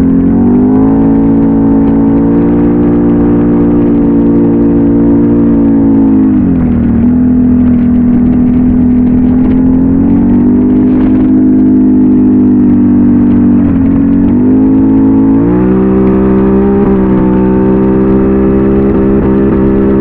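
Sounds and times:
atv engine running: 0.0s - 20.0s.

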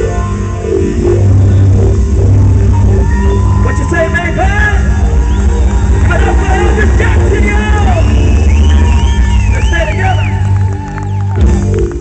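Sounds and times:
deep held bass note: 0.0s - 9.7s
live band playing: 0.0s - 12.0s.

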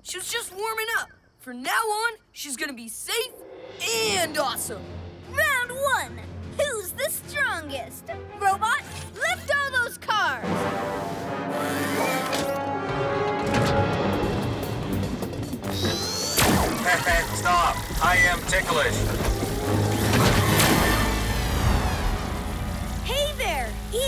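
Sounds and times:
crashing hits: 16.4s - 23.0s.

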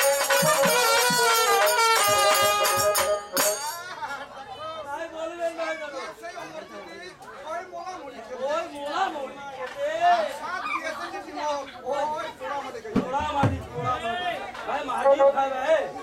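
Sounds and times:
overlapping voices chattering: 0.0s - 16.0s.

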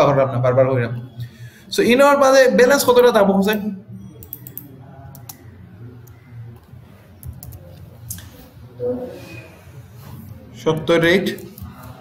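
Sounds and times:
keyboard and mouse clicks: 4.2s - 8.3s.

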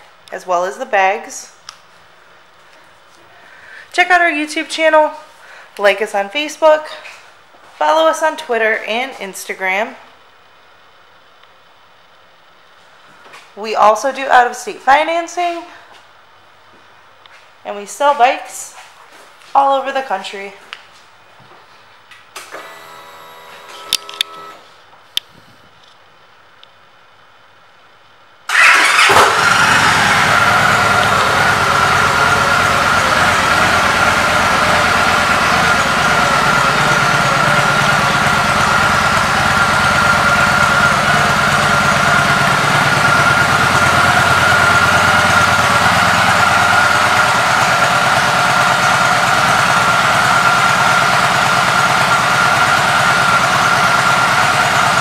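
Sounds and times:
motorcycle engine starting and idling: 22.4s - 24.7s, 28.5s - 55.0s
steady high whine: 29.4s - 47.0s.

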